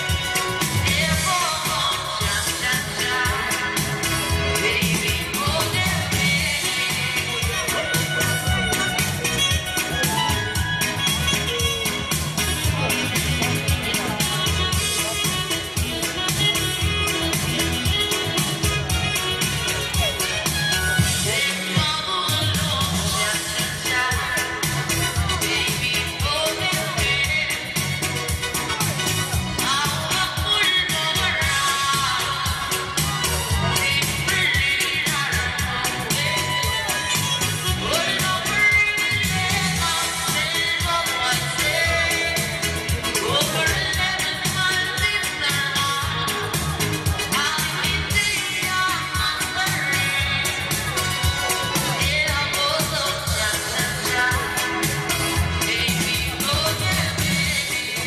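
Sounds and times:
singing over a steady beat: 0.0s - 58.0s.

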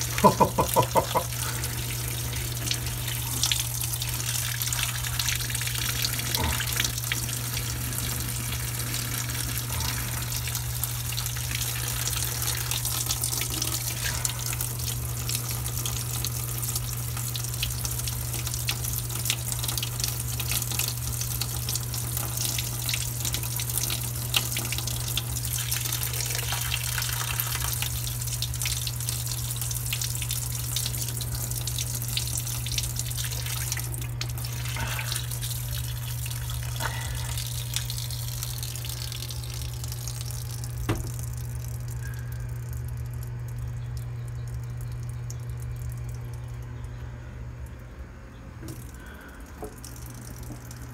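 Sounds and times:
water pouring into drain: 0.0s - 43.6s
constant low hum: 0.0s - 50.9s.

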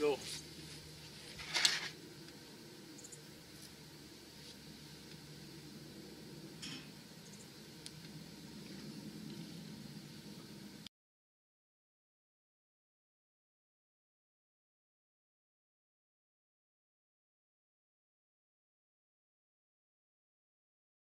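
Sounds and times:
steady low hiss: 0.0s - 10.9s
brief rustle: 1.3s - 2.0s.

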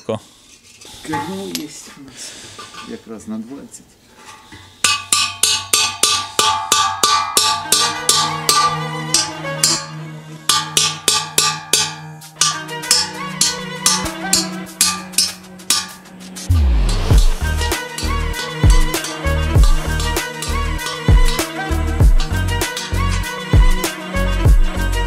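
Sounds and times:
hammer striking steel: 4.3s - 24.0s
music: 5.4s - 25.0s.

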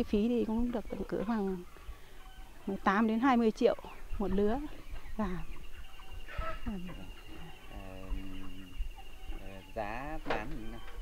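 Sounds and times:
woman speaking: 0.0s - 1.7s, 2.6s - 5.6s, 6.6s - 7.1s
chickens clucking: 0.0s - 11.0s.

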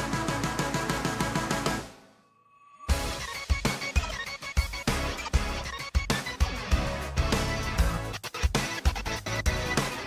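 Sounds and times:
fast synth bass and drums music: 0.0s - 2.0s, 2.9s - 10.0s.

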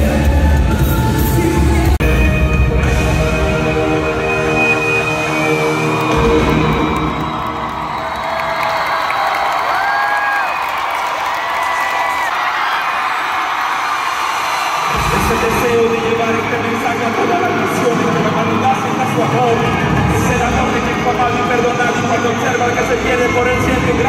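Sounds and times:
live band music: 0.0s - 7.4s
crowd cheering: 3.5s - 24.0s.

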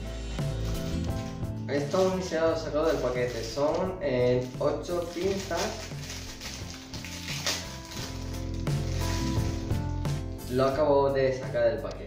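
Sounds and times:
background music with low notes: 0.0s - 12.0s
plastic packet crinkling: 0.6s - 10.6s.

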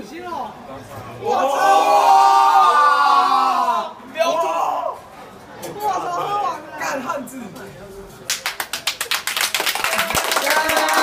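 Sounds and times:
group clapping rhythmically: 8.3s - 11.0s.

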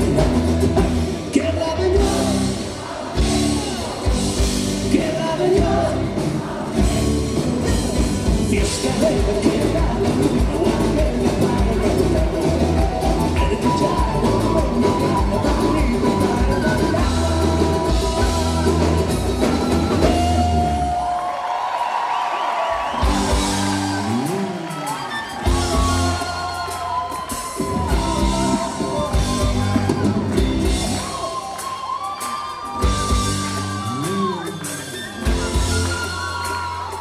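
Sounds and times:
live band music: 0.0s - 21.4s, 22.7s - 37.0s.

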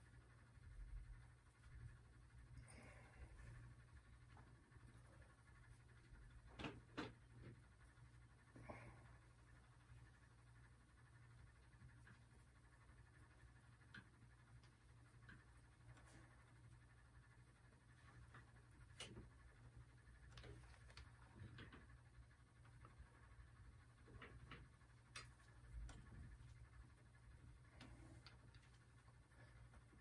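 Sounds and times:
low room hum: 0.0s - 30.0s.

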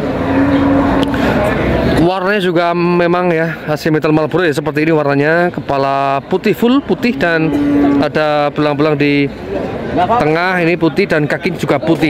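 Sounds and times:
vehicle engine humming: 0.0s - 3.7s, 5.3s - 10.6s
crowd noise: 0.0s - 12.0s.

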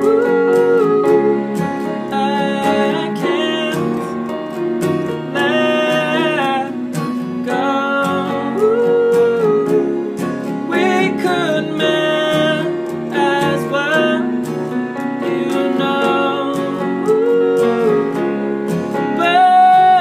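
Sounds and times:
man singing a slow ballad: 0.0s - 4.4s, 5.1s - 20.0s
strummed acoustic guitar: 0.0s - 20.0s.

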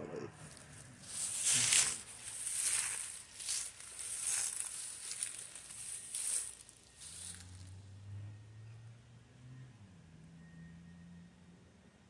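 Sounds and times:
leaves crunching underfoot: 0.4s - 7.8s.

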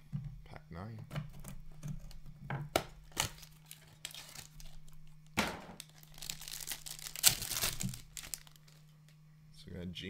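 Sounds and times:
foil pack tearing and crinkling: 3.0s - 8.9s.

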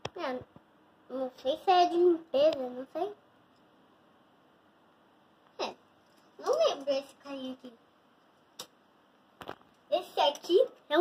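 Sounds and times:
toy cars clicking on wood: 10.2s - 10.8s.

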